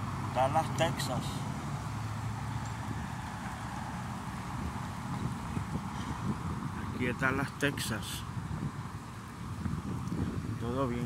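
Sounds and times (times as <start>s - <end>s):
city street ambience: 0.0s - 11.0s.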